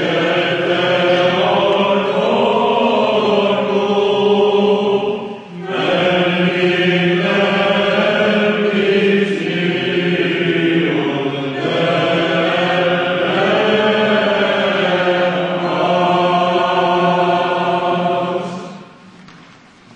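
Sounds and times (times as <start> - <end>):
choir chanting over drone: 0.0 - 19.1.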